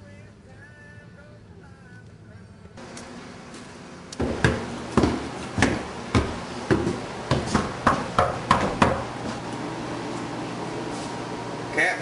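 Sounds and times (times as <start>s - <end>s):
hard thuds: 4.2s - 9.1s.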